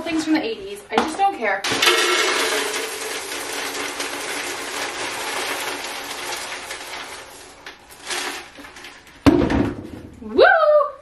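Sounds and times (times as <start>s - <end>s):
cereal rattling into plastic container: 1.7s - 9.2s.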